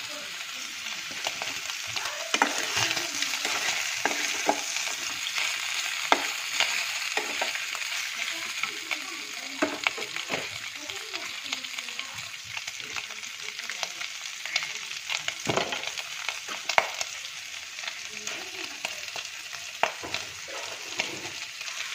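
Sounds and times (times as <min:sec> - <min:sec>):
meat sizzling in oil: 0:00.0 - 0:21.9
metal spoon scraping pan: 0:02.3 - 0:07.7.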